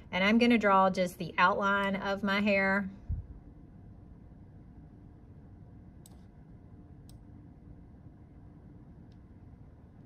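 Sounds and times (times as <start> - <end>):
steady low hum: 0.0 - 10.0
computer mouse click: 6.0 - 6.3, 7.0 - 7.3.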